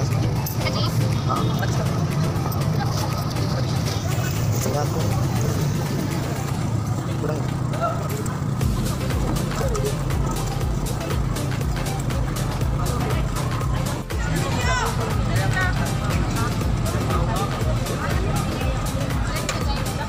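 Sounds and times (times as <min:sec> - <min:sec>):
music: 0:00.0 - 0:20.0
street sounds: 0:00.0 - 0:20.0
voices: 0:00.0 - 0:20.0.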